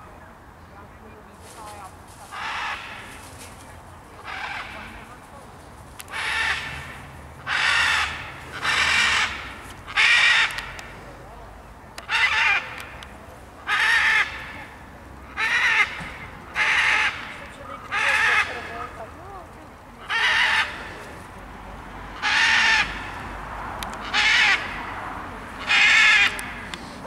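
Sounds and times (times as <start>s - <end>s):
macaw squawking: 2.2s - 3.4s, 4.2s - 5.2s, 6.0s - 10.9s, 12.0s - 19.0s, 20.0s - 21.1s, 22.2s - 23.2s, 24.0s - 24.9s, 25.6s - 26.9s.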